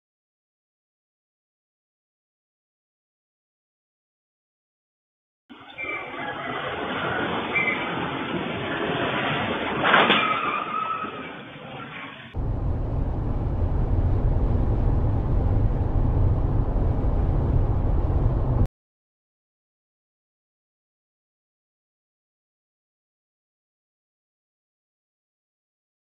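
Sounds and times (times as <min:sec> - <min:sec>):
road and engine rumble inside car: 0:12.4 - 0:18.7.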